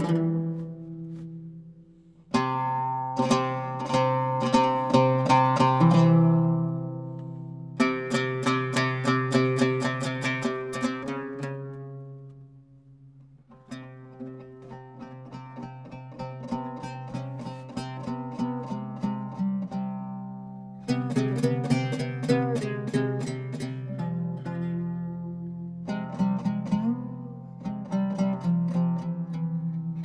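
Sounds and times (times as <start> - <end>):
two ouds plucked in duet: 0.0 - 30.0.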